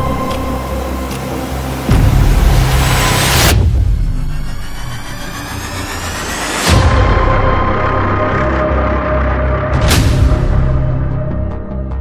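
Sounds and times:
noisy swell: 0:00.6 - 0:08.6
rising high tones: 0:04.1 - 0:06.8.

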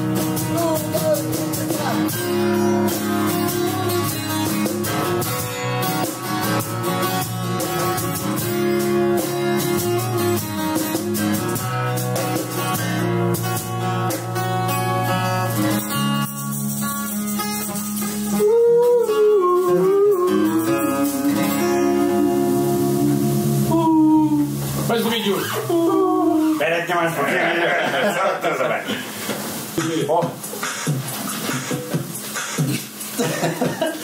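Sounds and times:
acoustic bass guitar: 0:00.0 - 0:28.1
acoustic guitar: 0:00.0 - 0:34.0
wavering bending melody line: 0:18.3 - 0:26.6.

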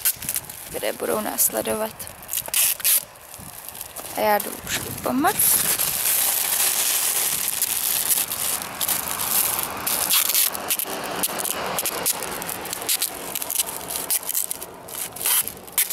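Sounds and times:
packing tape rasping off roll: 0:00.0 - 0:00.8, 0:02.1 - 0:15.9
plastic bag crinkling: 0:00.0 - 0:15.9.

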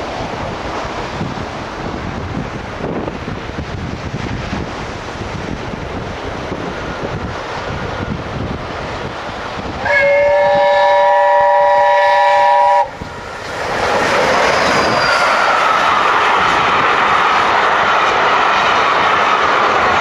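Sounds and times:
train wheels rushing on rails: 0:00.0 - 0:20.0
steam locomotive chime whistle: 0:09.8 - 0:13.0.

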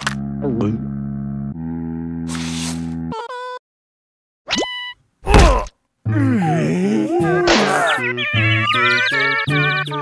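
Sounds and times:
wavering groan: 0:05.3 - 0:08.2.

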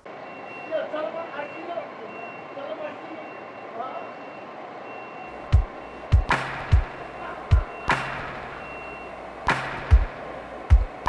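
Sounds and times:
traffic hum: 0:00.0 - 0:11.0
truck reversing alarm beeping: 0:00.0 - 0:11.0
faint voices: 0:00.6 - 0:04.3, 0:07.0 - 0:07.9
kick drum beat: 0:05.5 - 0:08.3, 0:09.5 - 0:11.0.

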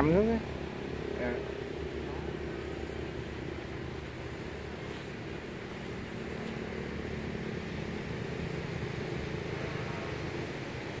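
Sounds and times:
faint hum: 0:00.0 - 0:11.0
low motor rumble: 0:00.0 - 0:11.0.

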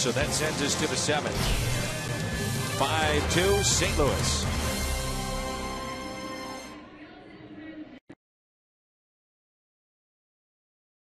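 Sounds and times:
broadcast sound fragment: 0:00.0 - 0:07.3.

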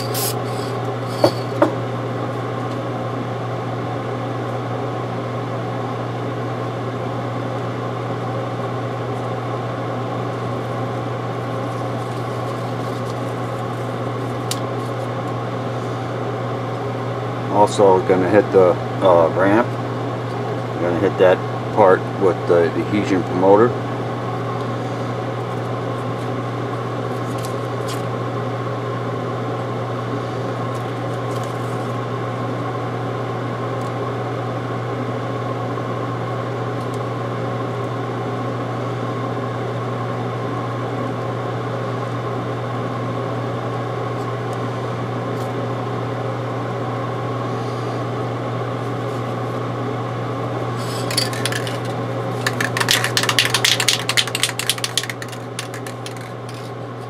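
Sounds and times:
electric motor humming: 0:00.0 - 0:01.8.

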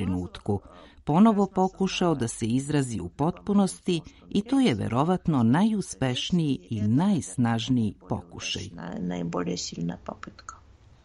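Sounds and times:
person speaking: 0:00.0 - 0:10.7.

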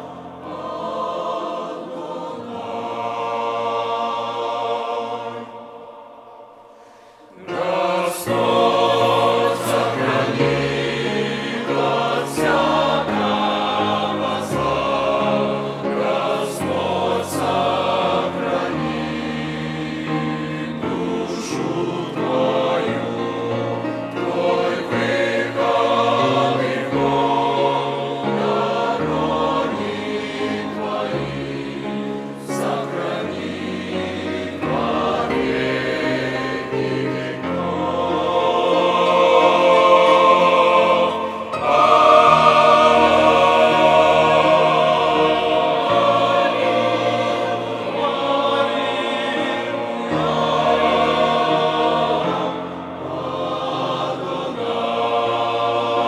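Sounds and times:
mixed choir singing a hymn: 0:00.0 - 0:56.0.

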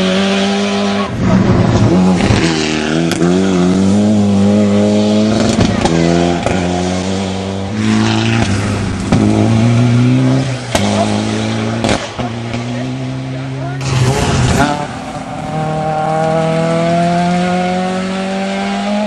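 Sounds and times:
rally car engines revving: 0:00.0 - 0:19.0.

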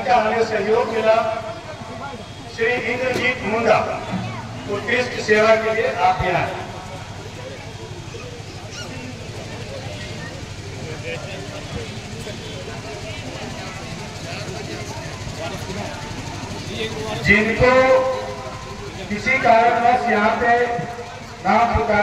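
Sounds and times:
distant voices of a crowd: 0:00.0 - 0:22.0.

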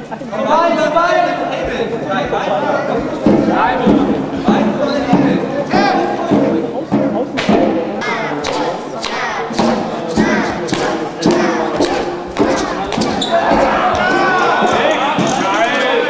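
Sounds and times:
people shouting: 0:08.0 - 0:16.0.

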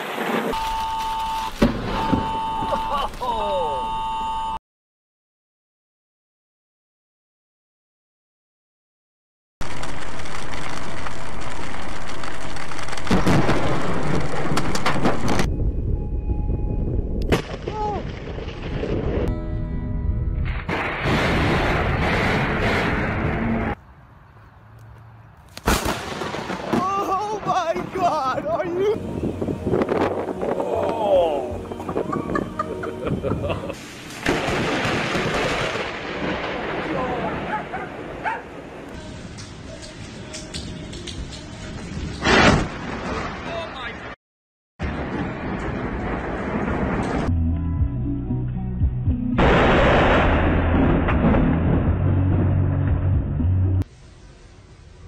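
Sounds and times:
sharp thunder crack: 0:01.6 - 0:02.2, 0:13.0 - 0:16.0, 0:16.7 - 0:19.3, 0:20.4 - 0:23.8, 0:25.6 - 0:28.1, 0:33.8 - 0:38.9, 0:42.2 - 0:43.6, 0:44.8 - 0:47.3, 0:49.4 - 0:53.1
person exclaiming: 0:01.9 - 0:04.6, 0:17.6 - 0:18.1, 0:26.7 - 0:29.0, 0:30.6 - 0:31.6
heavy rain through trees: 0:09.6 - 0:14.8
thunder rumbling and crackling: 0:09.6 - 0:19.3, 0:20.3 - 0:23.8, 0:25.7 - 0:28.6, 0:33.3 - 0:39.3, 0:41.7 - 0:44.2, 0:44.8 - 0:47.3, 0:49.4 - 0:53.3.

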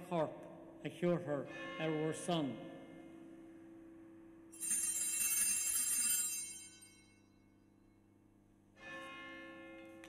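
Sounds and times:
altar bells ringing: 0:04.5 - 0:07.6.

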